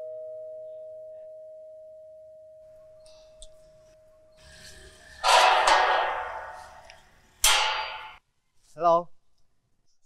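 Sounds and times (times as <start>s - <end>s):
metal gate clanking: 4.4s - 8.2s.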